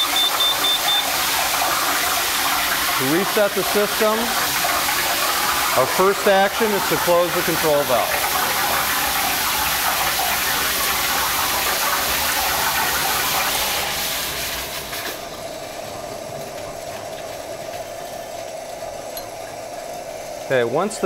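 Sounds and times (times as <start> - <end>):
water hissing through pipes: 0.0 - 21.0.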